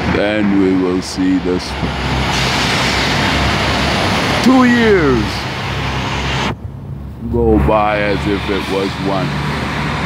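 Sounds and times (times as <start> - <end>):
hiss of passing vehicles: 0.0 - 10.0
low engine rumble: 0.0 - 10.0.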